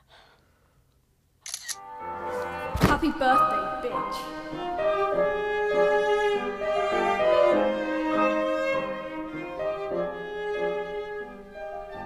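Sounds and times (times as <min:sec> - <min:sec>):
camera shutter double click: 0:01.4 - 0:01.8
music with held tones: 0:01.8 - 0:12.0.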